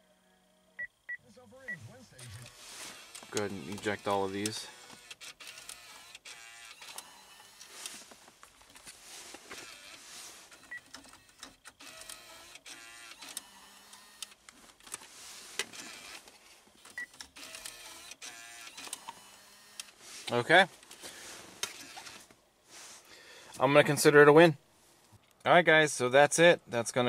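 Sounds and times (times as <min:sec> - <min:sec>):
small motor whirring: 0:02.3 - 0:08.1, 0:09.1 - 0:14.4, 0:15.0 - 0:16.3, 0:17.0 - 0:20.3.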